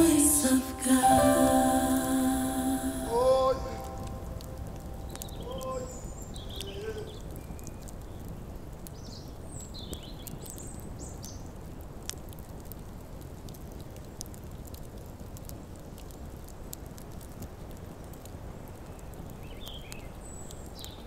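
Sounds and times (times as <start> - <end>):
steady low rumble: 1.6 - 6.3.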